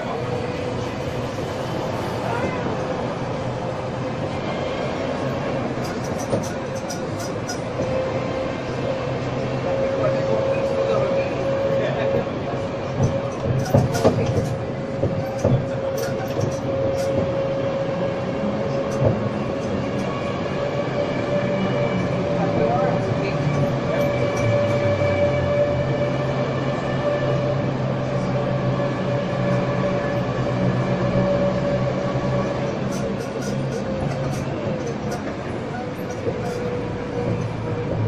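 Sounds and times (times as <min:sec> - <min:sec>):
road noise: 0:00.0 - 0:38.0.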